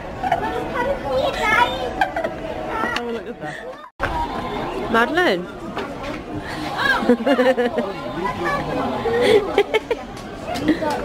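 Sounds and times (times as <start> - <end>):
chatter of adults and children: 0.0 - 11.0.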